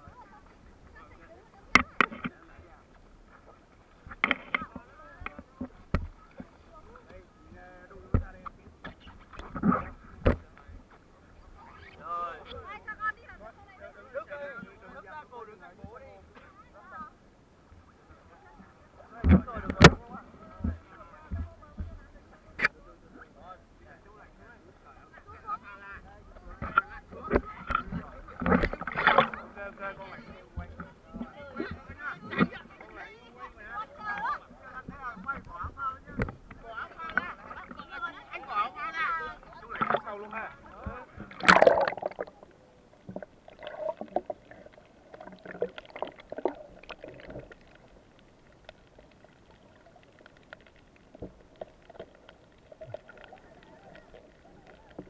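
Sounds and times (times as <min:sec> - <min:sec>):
sea water splashing and sloshing: 0:25.3 - 0:55.0
underwater bubbling: 0:26.3 - 0:32.9, 0:34.0 - 0:55.0.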